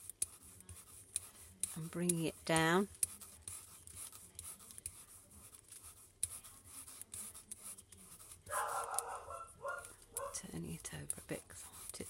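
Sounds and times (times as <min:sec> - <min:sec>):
sponge roller rubbing on card: 0:00.0 - 0:12.0.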